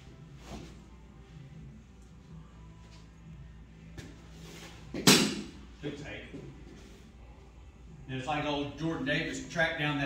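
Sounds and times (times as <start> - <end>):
steady low hum: 0.0 - 10.0
bat hitting softball crack: 5.0 - 5.6.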